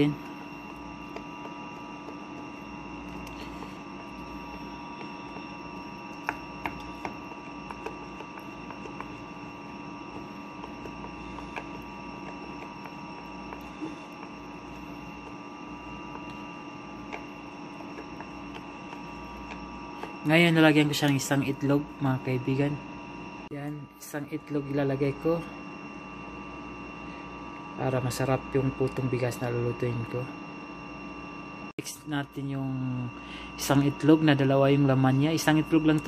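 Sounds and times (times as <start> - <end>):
steady electrical hum: 0.0 - 36.0.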